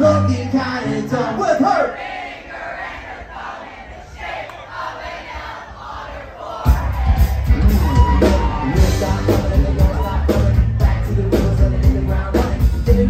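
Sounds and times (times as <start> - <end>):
crowd singing along: 0.4 - 13.0
live rock band: 6.6 - 13.0.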